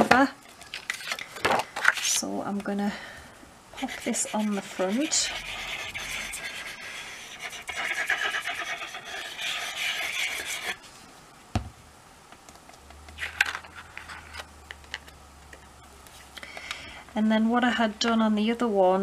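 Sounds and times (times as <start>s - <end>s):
glue nozzle scratching card: 3.8s - 10.8s.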